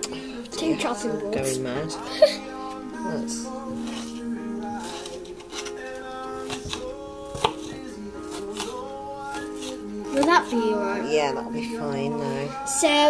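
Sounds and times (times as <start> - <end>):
background music: 0.0 - 13.0
knife cutting on chopping board: 3.7 - 10.3.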